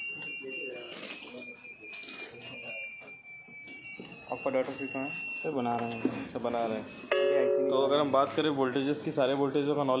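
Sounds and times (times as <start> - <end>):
high-pitched continuity beeps: 0.0 - 8.3.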